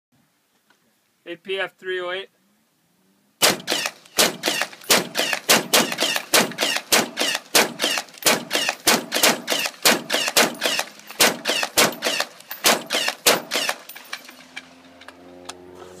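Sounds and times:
rifle fired rapidly: 3.4 - 13.9.

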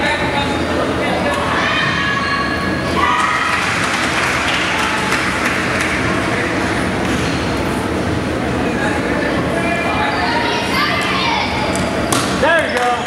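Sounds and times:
crowd murmur: 0.0 - 12.7.

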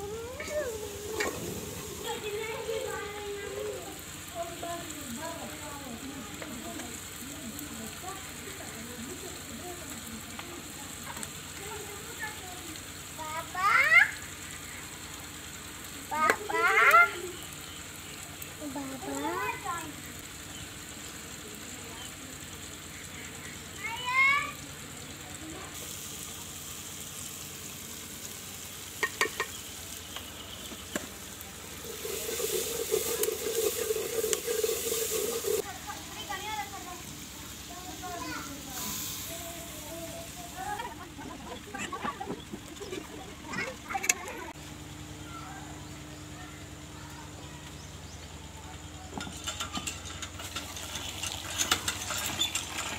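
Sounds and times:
spices sizzling in a pot: 0.0 - 52.9
ladle stirring in a pot: 29.0 - 35.7, 49.2 - 52.9.

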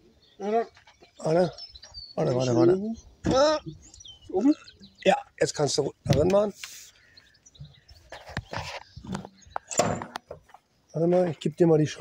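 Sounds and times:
steel hatch knocks and scrapes: 9.0 - 10.4.

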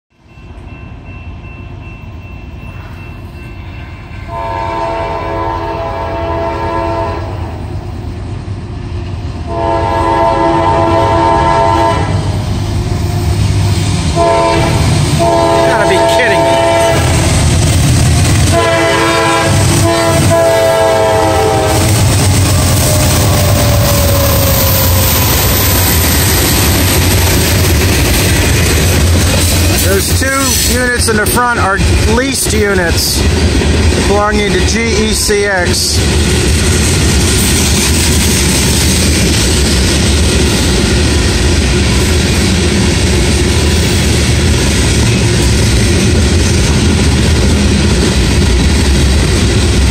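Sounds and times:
train engines and wheels rumbling: 0.1 - 49.9
locomotive air horn blasts: 3.8 - 7.4, 9.5 - 12.2, 14.2 - 17.2, 18.5 - 22.0.

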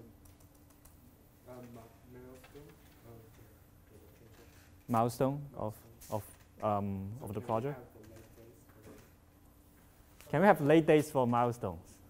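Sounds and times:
typing on computer keyboard: 0.2 - 2.8.

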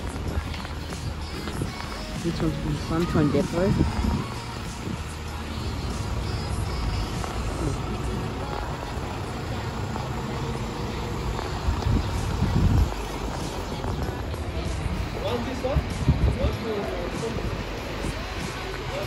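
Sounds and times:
bus engine rumble: 0.0 - 19.0
street traffic: 0.0 - 19.0.

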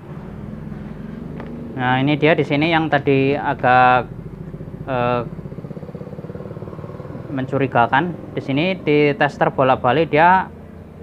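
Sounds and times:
small engine running: 0.0 - 11.0.

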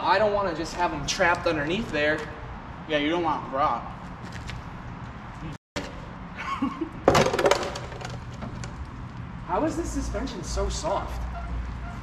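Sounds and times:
debris clattering in truck bed: 7.0 - 8.8.

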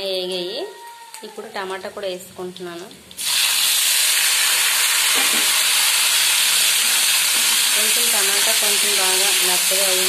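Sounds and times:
tomatoes sizzling in hot oil: 1.6 - 10.0.

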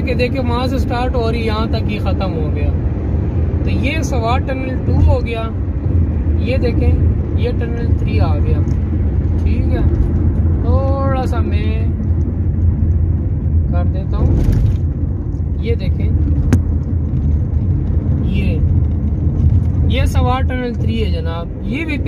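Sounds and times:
car cabin road rumble: 0.0 - 22.0.

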